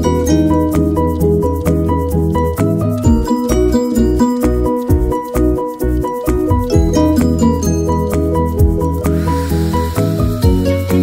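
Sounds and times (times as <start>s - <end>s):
background music: 0.0s - 11.0s
hair spray bottle spraying: 9.1s - 10.9s.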